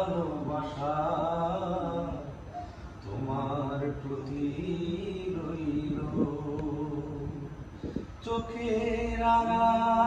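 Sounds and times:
man singing long gliding notes: 0:03.0 - 0:10.0.

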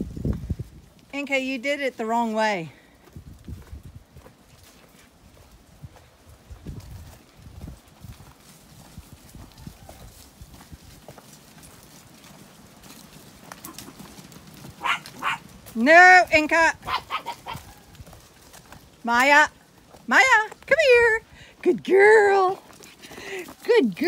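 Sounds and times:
sheep hooves trotting on dirt: 0:00.0 - 0:24.0.

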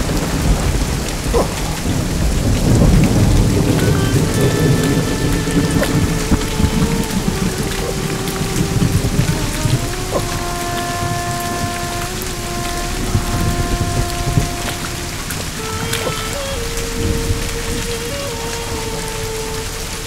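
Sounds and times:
heavy rain: 0:00.0 - 0:20.0
thunder rumble: 0:00.0 - 0:20.0
background music held notes: 0:01.8 - 0:20.0.

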